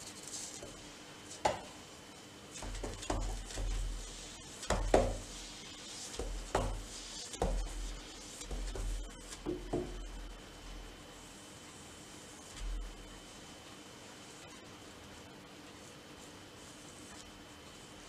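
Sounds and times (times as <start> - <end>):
paintbrush knocking on paint tin: 2.6 - 3.9, 4.7 - 5.3, 6.2 - 7.8, 8.4 - 10.0.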